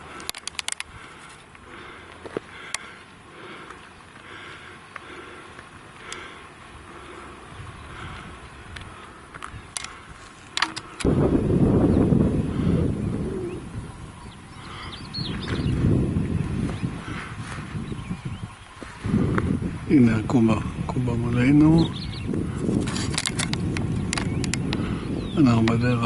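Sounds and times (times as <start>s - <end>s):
wind rumbling on microphone: 2.6s - 26.0s
high bird chirps: 13.1s - 17.0s.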